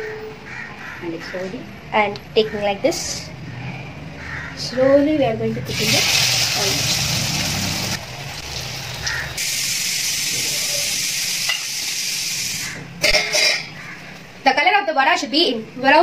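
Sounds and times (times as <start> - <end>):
food deep-frying in hot oil: 5.7 - 12.7.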